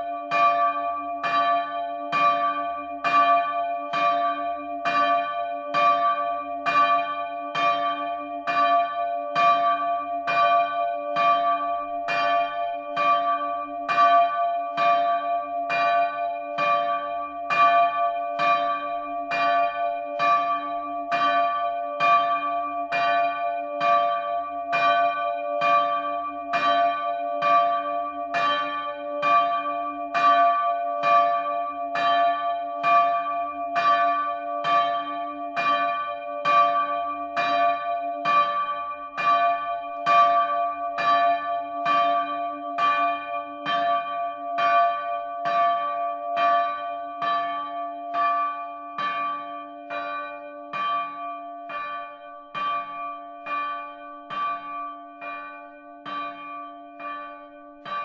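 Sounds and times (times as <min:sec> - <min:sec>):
church bell ringing: 0:00.0 - 0:58.0.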